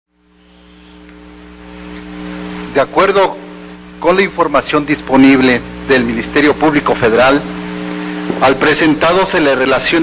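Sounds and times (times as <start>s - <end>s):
electrical hum with faint hiss: 0.1s - 10.0s.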